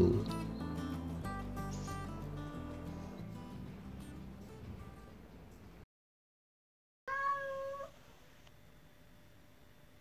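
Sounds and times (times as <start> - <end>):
cat meowing: 7.1 - 8.0.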